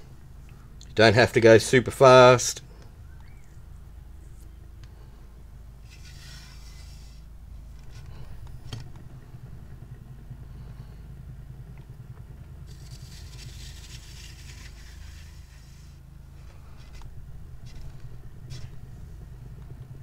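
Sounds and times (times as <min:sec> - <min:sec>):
paint spinner low rumble: 0:00.0 - 0:20.0.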